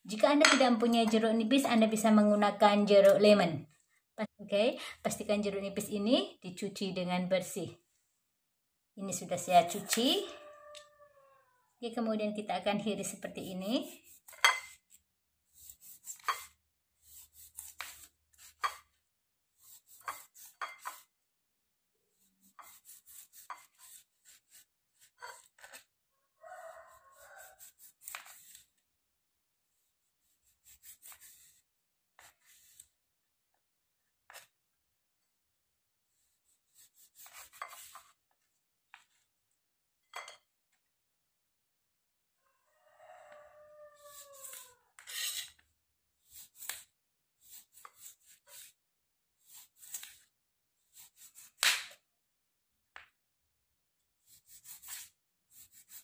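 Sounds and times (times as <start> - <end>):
knife slicing limes on board: 15.6 - 18.9, 27.5 - 28.6.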